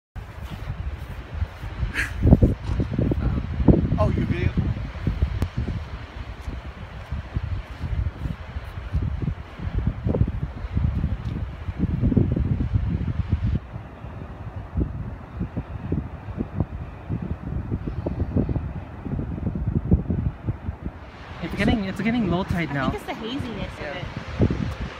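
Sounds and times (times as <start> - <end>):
wind buffeting microphone: 0.2 - 24.9.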